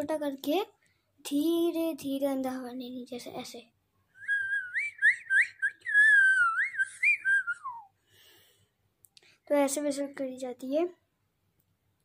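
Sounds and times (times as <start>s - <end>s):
boy whistling: 4.2s - 8.0s.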